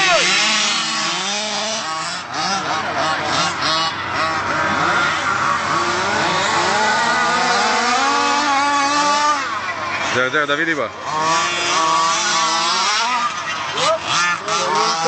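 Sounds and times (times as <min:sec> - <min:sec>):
small two-stroke engines revving: 0:00.0 - 0:15.0.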